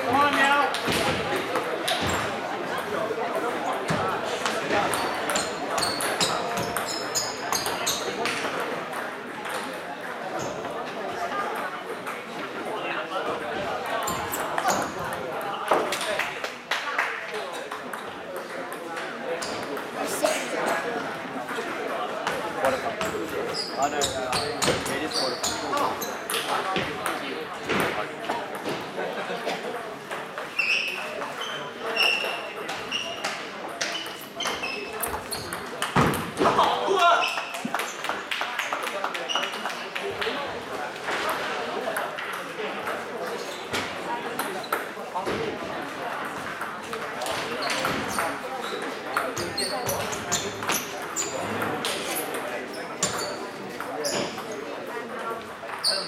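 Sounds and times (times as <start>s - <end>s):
murmur of voices: 0.0s - 56.0s
table tennis balls clicking: 32.0s - 36.6s.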